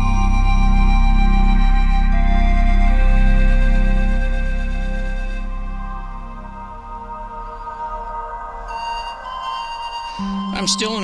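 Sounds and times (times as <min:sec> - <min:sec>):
soft ambient music: 0:00.0 - 0:11.0
man talking: 0:10.5 - 0:11.0.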